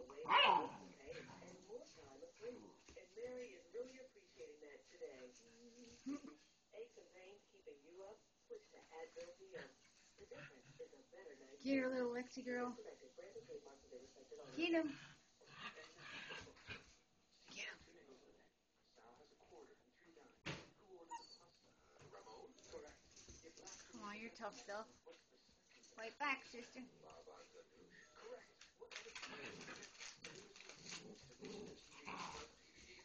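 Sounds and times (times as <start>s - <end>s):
puppies growling: 14.9s - 17.0s, 29.0s - 33.0s
puppies scuffling on bedding: 22.6s - 33.0s.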